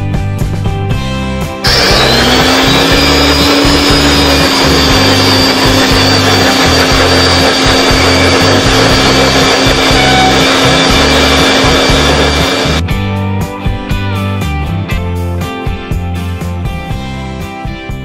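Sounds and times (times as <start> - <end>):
electric blender whining: 1.6 - 12.9.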